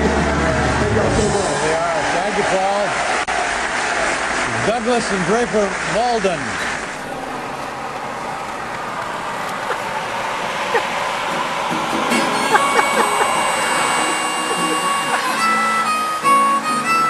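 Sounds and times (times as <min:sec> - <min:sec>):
guitar: 0:00.0 - 0:01.8, 0:10.8 - 0:17.0
harmonica: 0:11.7 - 0:17.0
music with held tones: 0:11.8 - 0:17.0.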